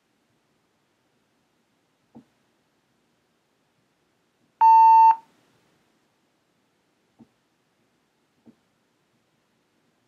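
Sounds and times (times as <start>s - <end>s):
electronic beep: 4.6s - 5.2s.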